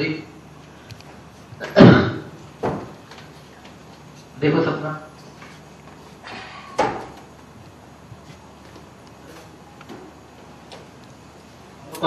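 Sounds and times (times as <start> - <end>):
low background noise: 0.0 - 12.0.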